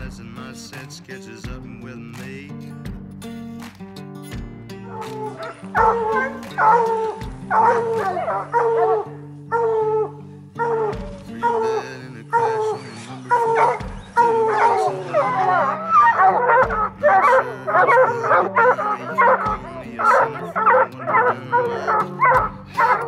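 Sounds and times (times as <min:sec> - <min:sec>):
hounds baying: 0:04.8 - 0:23.0.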